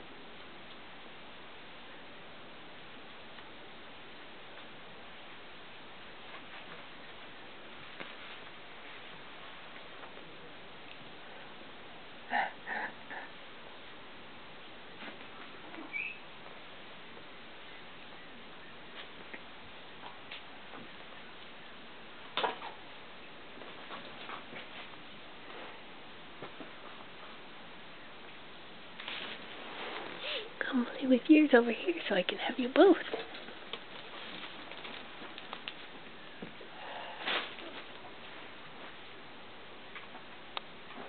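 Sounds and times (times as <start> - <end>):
steady hiss: 0.0 - 41.0
puppies scuffling on quilt: 6.1 - 10.3, 29.0 - 30.9, 31.9 - 39.1
puppies scuffling: 32.6 - 36.7.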